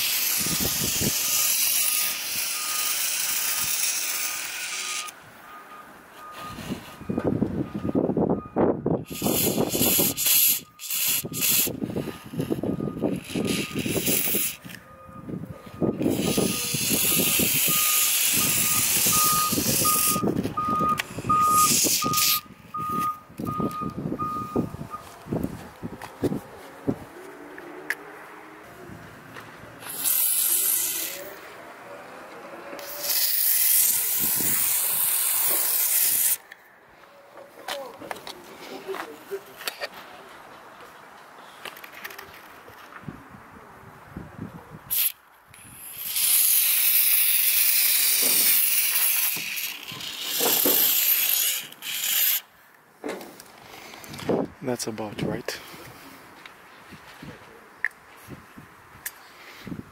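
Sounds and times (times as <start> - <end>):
reversing alarm beeping: 0.4 - 3.8, 4.6 - 11.6, 12.5 - 14.1, 14.7 - 25.2
aerosol spray hissing: 9.1 - 11.7.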